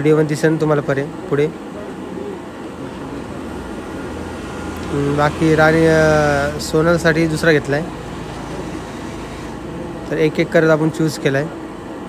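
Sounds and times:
indoor machinery hum and hiss: 0.0s - 12.0s.

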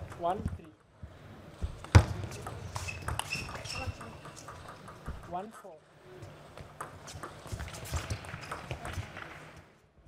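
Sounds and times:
table tennis ball clicking: 1.8s - 5.4s
shoe squeak: 2.6s - 4.8s.

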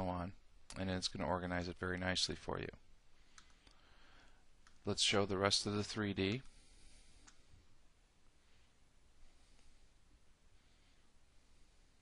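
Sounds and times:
man's voice: 4.8s - 6.5s.

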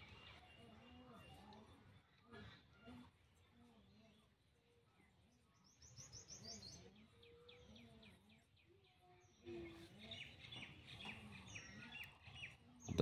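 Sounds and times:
faint bird chirping: 0.0s - 13.0s.

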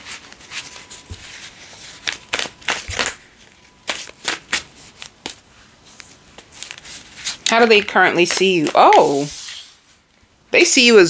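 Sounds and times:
cards shuffled by hand: 6.0s - 9.8s.

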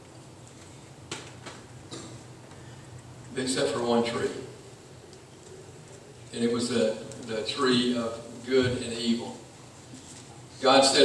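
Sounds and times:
faint clicks and rustles: 0.0s - 3.4s, 4.7s - 6.4s, 9.6s - 10.5s
low room hum: 0.0s - 11.0s.

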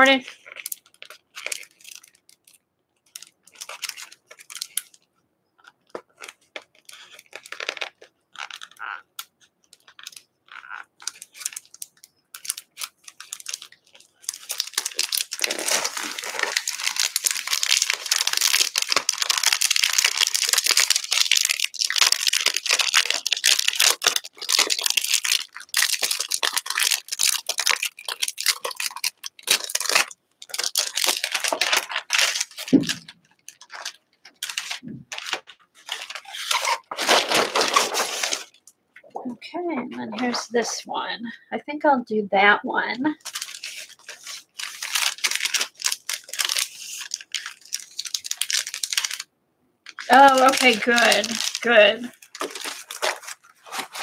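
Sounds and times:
plastic film crinkling: 0.0s - 40.8s, 43.2s - 49.3s, 49.9s - 54.0s.

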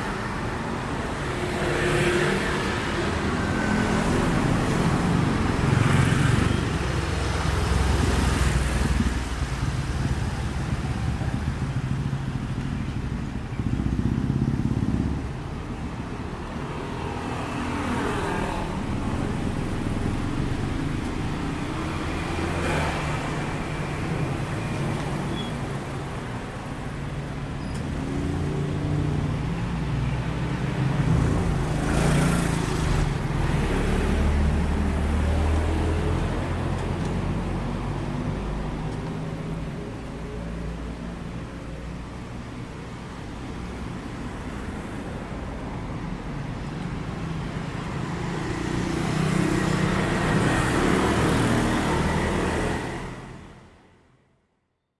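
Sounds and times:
car engines passing: 0.0s - 53.8s
low traffic rumble: 0.0s - 54.2s.

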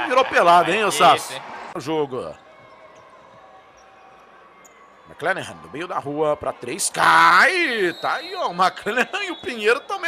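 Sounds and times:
low arena background hum: 0.0s - 10.0s.

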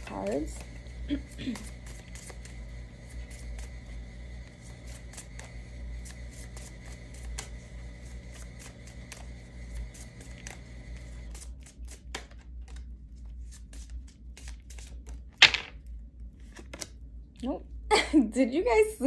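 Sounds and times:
cards being shuffled: 0.0s - 17.0s
faint steady hum: 0.0s - 19.0s.

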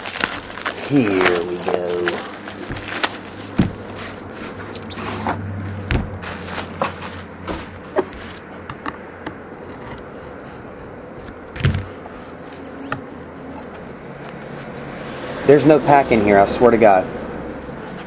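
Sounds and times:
box and wrapping handling noise: 0.0s - 15.0s, 17.3s - 18.0s.

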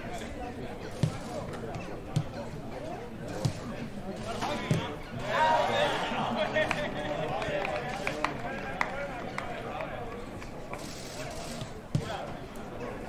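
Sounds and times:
footballers calling out: 3.4s - 10.2s.

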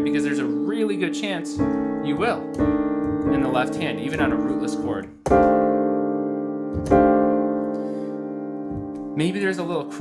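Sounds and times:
jazz piano chords ringing: 0.0s - 10.0s.

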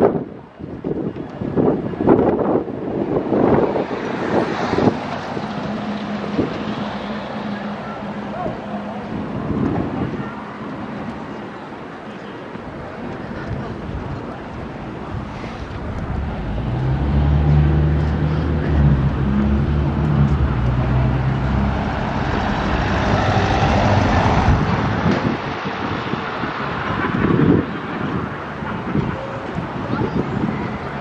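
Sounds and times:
tyre and road noise: 0.0s - 31.0s
van engine humming: 4.2s - 11.1s, 13.8s - 25.6s.

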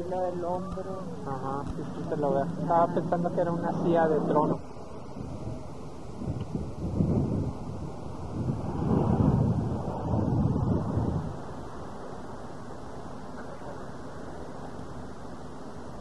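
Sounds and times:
wind buffeting microphone: 0.6s - 11.9s.

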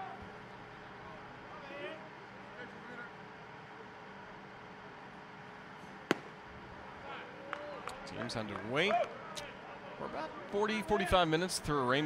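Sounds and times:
low stadium background: 0.0s - 12.0s
baseball popping into leather mitt: 6.1s - 6.4s.

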